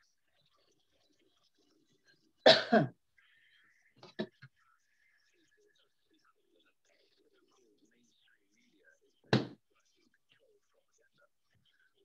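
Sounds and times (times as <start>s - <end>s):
woman coughing: 2.4s - 2.9s.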